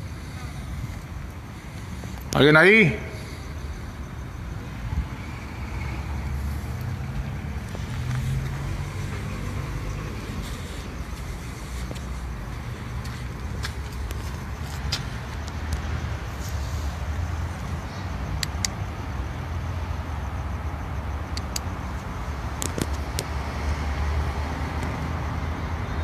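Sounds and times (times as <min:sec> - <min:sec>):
city traffic rumble: 0:00.0 - 0:26.0
vehicle passing: 0:00.0 - 0:26.0.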